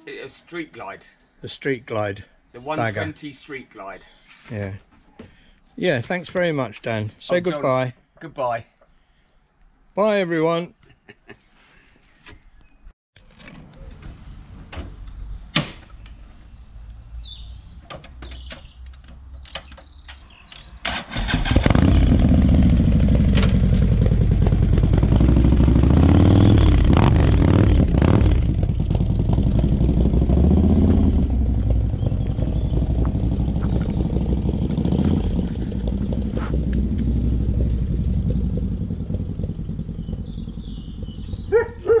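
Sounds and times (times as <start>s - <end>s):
motorcycle engine starting and revving: 20.8s - 42.0s.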